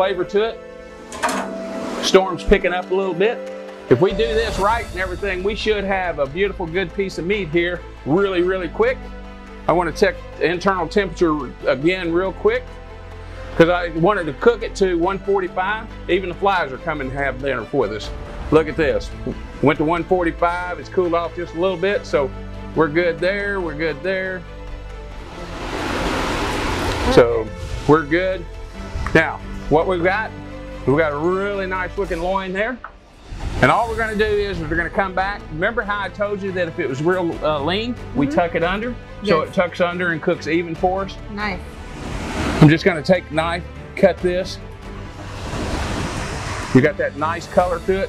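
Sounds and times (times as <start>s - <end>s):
background music: 0.0s - 48.0s
storm wind gust: 25.2s - 27.9s, 33.2s - 34.9s, 45.0s - 46.8s.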